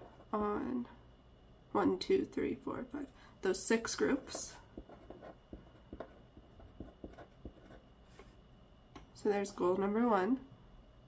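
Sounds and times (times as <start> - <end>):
pen scratching on paper: 4.0 - 8.2.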